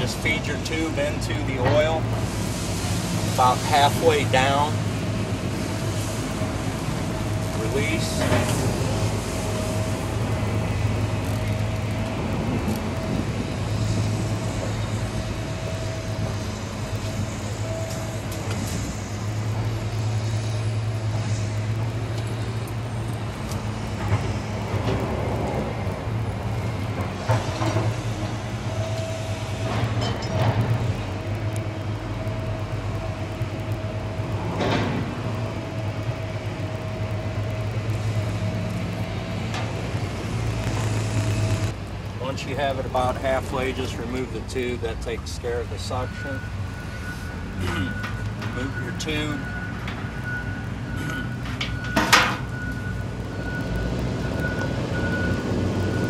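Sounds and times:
thin whine: 0:00.0 - 0:25.5, 0:26.7 - 0:56.0
low engine drone: 0:00.0 - 0:56.0.

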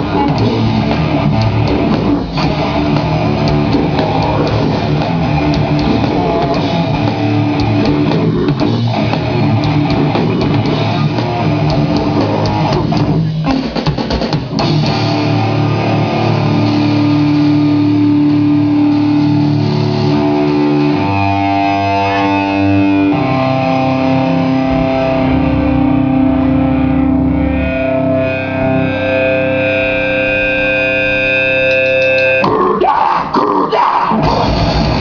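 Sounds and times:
distorted electric guitar chords: 0:00.0 - 0:35.0.

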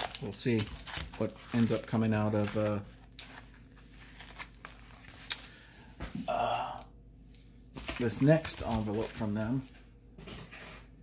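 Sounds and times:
paper rustling: 0:00.0 - 0:05.6, 0:07.8 - 0:11.0.

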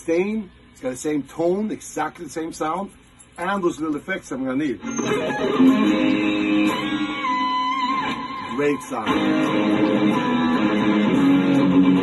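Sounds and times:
electric guitar notes with vibrato: 0:04.8 - 0:12.0.

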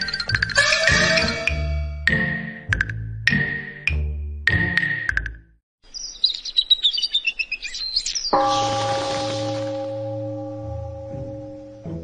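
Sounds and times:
small birds chirping: 0:05.8 - 0:09.6
deep bell ringing: 0:08.4 - 0:12.0.

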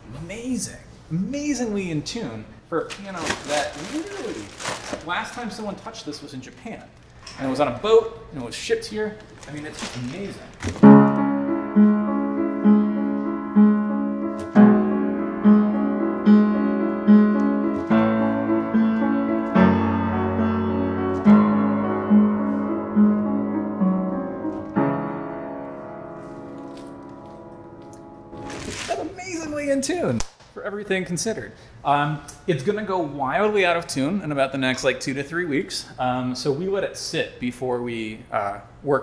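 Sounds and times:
upright piano playing chords: 0:10.8 - 0:30.0.

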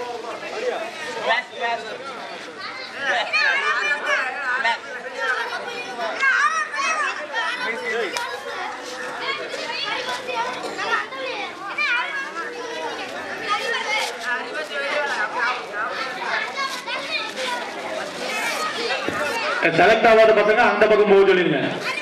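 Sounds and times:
children chattering and calling out: 0:00.0 - 0:22.0.

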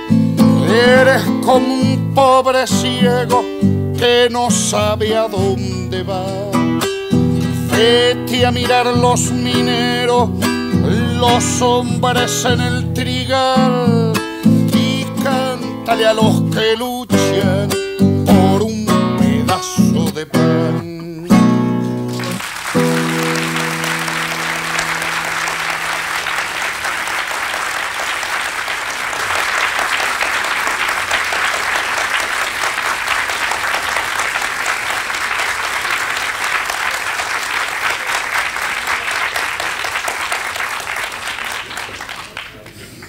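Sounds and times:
acoustic guitar chord ringing: 0:00.0 - 0:27.0
audience applauding: 0:22.0 - 0:43.0.

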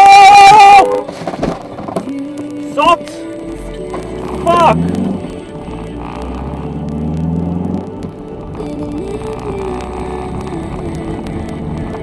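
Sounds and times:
music playing: 0:00.0 - 0:12.0
car engine accelerating: 0:03.1 - 0:12.0.

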